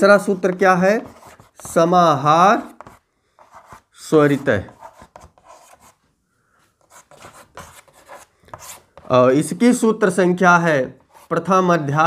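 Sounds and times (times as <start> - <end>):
chalk scratching on blackboard: 0.2 - 2.0, 2.6 - 6.0, 6.8 - 9.2, 11.0 - 11.5.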